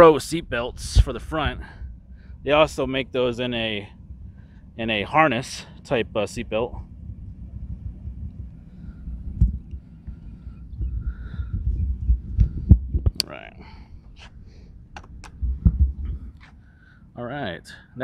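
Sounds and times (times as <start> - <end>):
camera handling rumble: 8.3 - 16.6.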